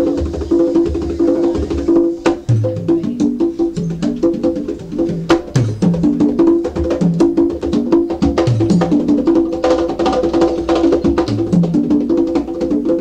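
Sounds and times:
jazz band playing uptempo: 0.0s - 13.0s.

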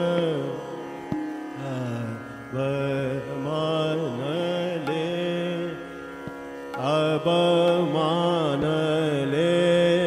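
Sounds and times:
man singing classical line: 0.0s - 0.8s, 1.6s - 6.0s, 6.7s - 10.0s.

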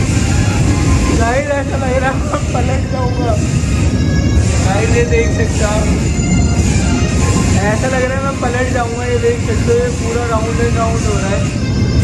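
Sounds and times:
rotating drum rumble: 0.0s - 12.0s
person speaking: 1.2s - 3.6s, 4.6s - 6.0s.

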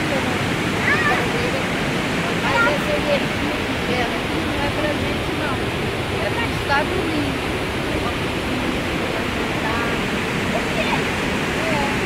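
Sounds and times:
waterfall rushing: 0.0s - 12.0s.

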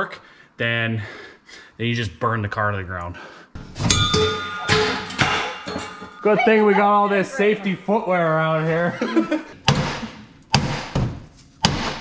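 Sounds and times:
sharp heavy knocks ringing: 3.6s - 6.5s.

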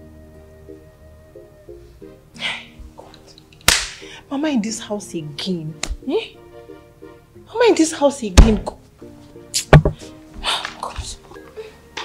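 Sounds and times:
soft background music: 0.0s - 12.0s.

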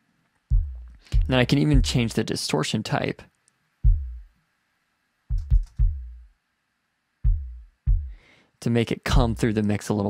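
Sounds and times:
electronic kick drum hits: 0.5s - 2.1s, 3.8s - 4.3s, 5.3s - 6.3s, 7.2s - 8.2s.

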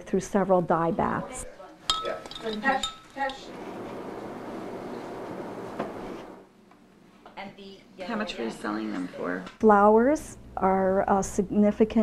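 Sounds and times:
glass clinks with ringing: 1.9s - 3.4s.

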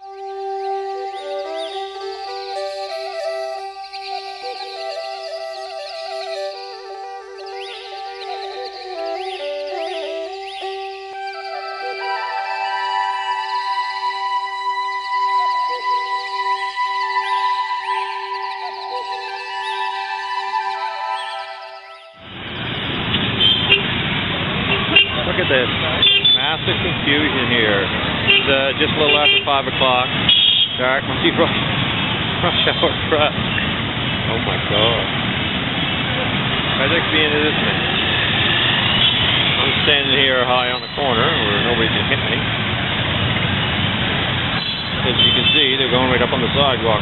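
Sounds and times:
background music: 0.0s - 22.4s
motorbikes: 0.1s - 16.9s, 22.2s - 47.0s
vehicle engines: 0.1s - 20.6s, 22.2s - 47.0s.

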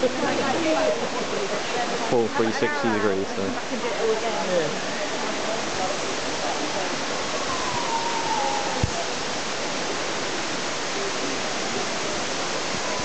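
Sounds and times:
steady rushing noise: 5.2s - 13.0s
falling whistle-like tone: 7.3s - 9.3s.

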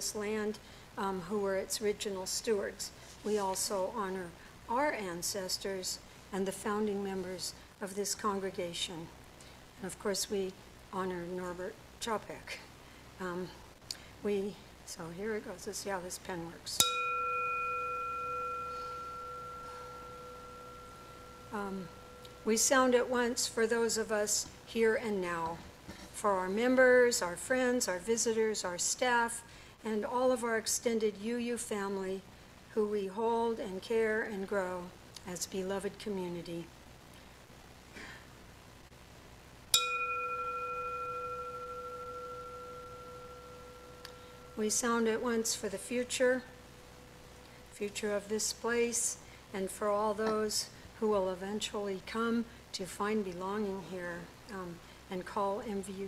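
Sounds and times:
singing bowl ringing: 16.8s - 24.1s, 39.7s - 47.4s.

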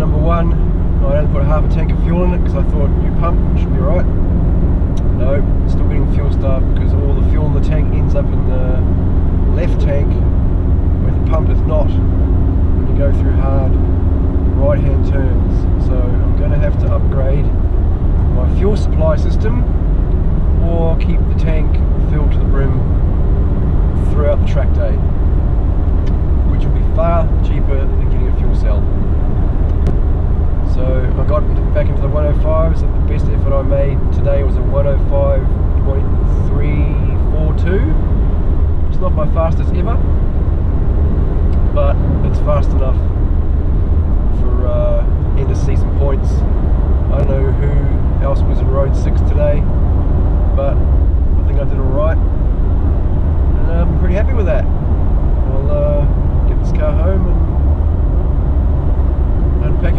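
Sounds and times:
man talking: 0.0s - 4.1s, 5.0s - 10.3s, 11.0s - 12.1s, 12.8s - 13.8s, 14.6s - 17.5s, 18.3s - 19.7s, 20.6s - 22.9s, 24.0s - 25.0s, 26.5s - 28.9s, 30.7s - 38.0s, 38.9s - 40.0s, 41.6s - 43.1s, 44.3s - 46.4s, 47.1s - 49.6s, 50.6s - 50.8s, 51.4s - 52.2s, 53.6s - 54.7s, 55.4s - 57.5s, 59.6s - 59.9s
car cabin road drone: 0.0s - 59.9s.

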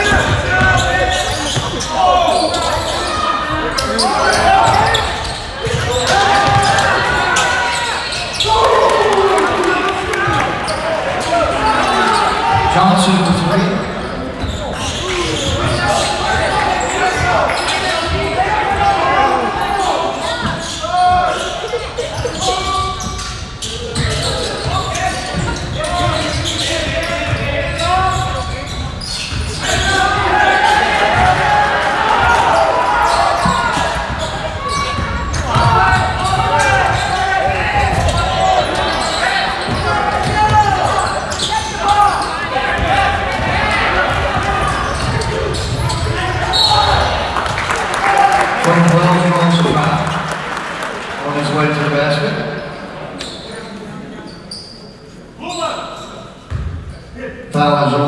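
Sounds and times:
people talking and shouting: 0.0s - 58.0s.

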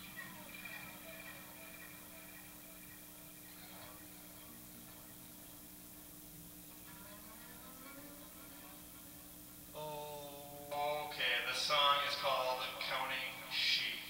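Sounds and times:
low electronic hum: 0.0s - 14.0s.

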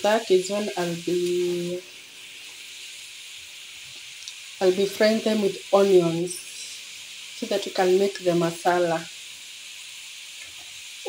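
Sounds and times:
chips sizzling in hot oil: 0.0s - 11.0s.

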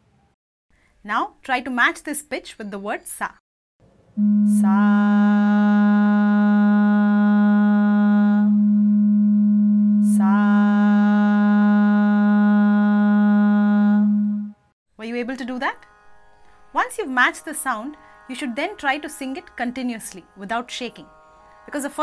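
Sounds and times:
shruti box drone: 4.2s - 22.0s.

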